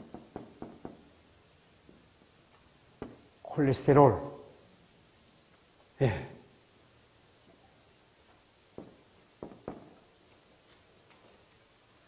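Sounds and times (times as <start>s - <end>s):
marker tapping on whiteboard: 0.0s - 1.0s.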